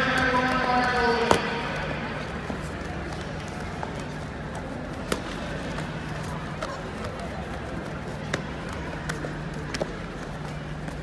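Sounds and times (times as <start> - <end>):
sports hall hum and murmur: 0.0 - 11.0.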